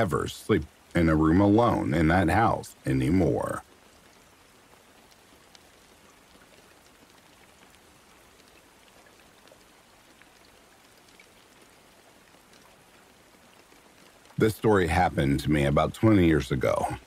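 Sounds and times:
rain hiss: 0:00.0 - 0:17.0.

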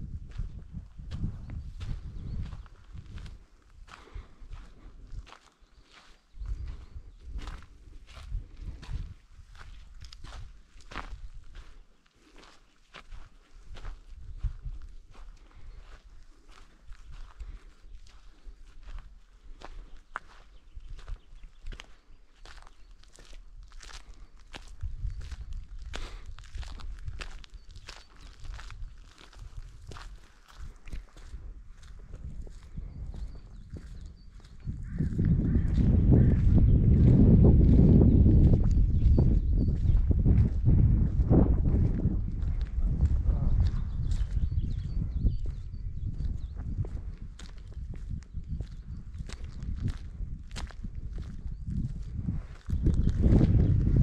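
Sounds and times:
footsteps on gravel path: 0:00.2 - 0:54.0.

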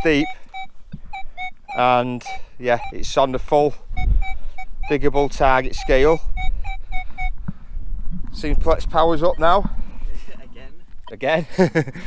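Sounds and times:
metal detector short beeps: 0:00.0 - 0:07.4
wind rumbling on microphone: 0:02.9 - 0:11.1.

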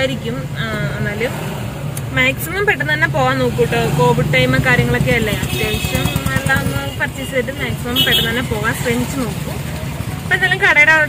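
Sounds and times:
car engine and tyres humming: 0:00.0 - 0:11.0.

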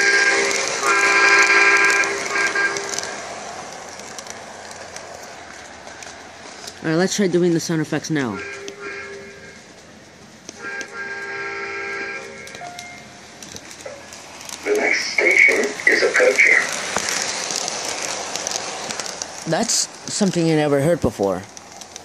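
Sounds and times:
toy train horn blast: 0:00.0 - 0:03.2, 0:08.3 - 0:09.6, 0:10.6 - 0:13.1
toy train rumbling on track: 0:00.0 - 0:22.0
choppy sound burst: 0:14.6 - 0:16.8.

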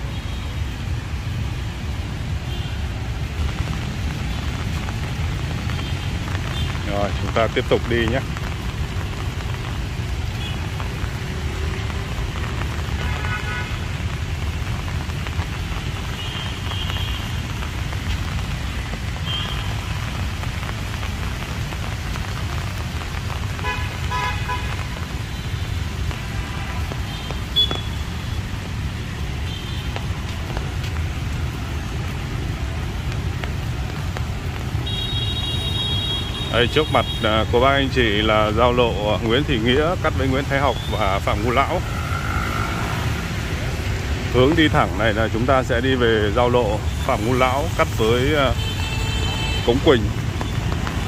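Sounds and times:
street traffic rumble: 0:00.0 - 0:51.0
horn toots: 0:12.8 - 0:14.0, 0:23.6 - 0:25.6.

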